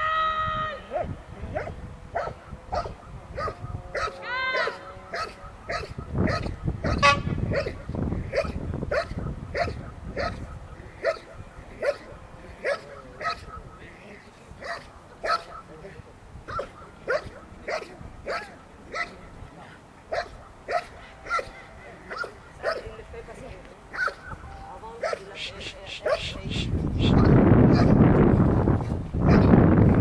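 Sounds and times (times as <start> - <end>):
dog barking: 0.9 - 13.7, 14.6 - 15.7, 16.5 - 19.2, 20.1 - 22.9, 23.9 - 24.4, 25.0 - 25.3, 26.0 - 26.4, 27.2 - 28.0, 29.3 - 29.5.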